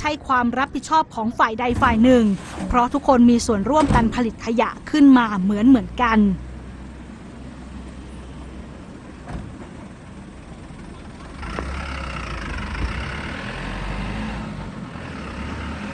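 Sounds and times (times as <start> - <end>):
garbage truck diesel engine humming: 0.0 - 15.9.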